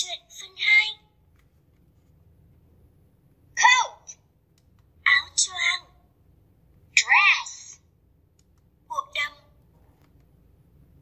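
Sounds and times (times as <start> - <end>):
small speaker voice clip: 0.0 - 1.2, 3.6 - 4.2, 5.0 - 6.1, 7.0 - 7.9, 8.9 - 9.6.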